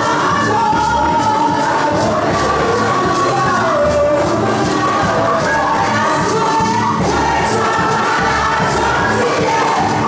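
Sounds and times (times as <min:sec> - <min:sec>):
band accompaniment with bass beat: 0:00.0 - 0:10.0
choir singing gospel song: 0:00.0 - 0:10.0.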